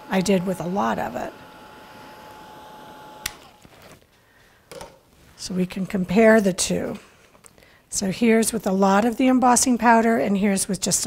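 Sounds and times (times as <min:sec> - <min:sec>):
heat gun fan whir: 0:00.0 - 0:03.7.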